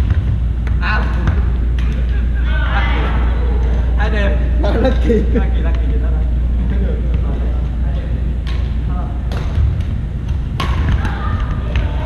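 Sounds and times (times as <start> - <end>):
low room rumble: 0.0 - 12.0
volleyball hit by hand: 8.4 - 12.0.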